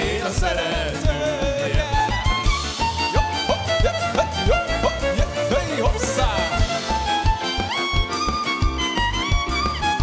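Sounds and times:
live band playing folk dance: 0.0 - 10.0
person singing: 3.0 - 7.2.

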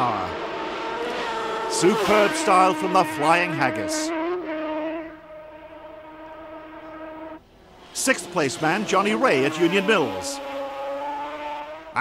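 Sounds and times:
two-stroke motorcycle engine buzzing: 0.0 - 12.0.

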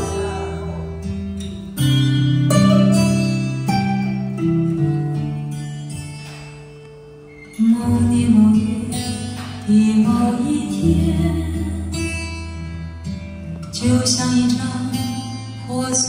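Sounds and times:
song with guitar and heavy bass: 0.0 - 16.0.

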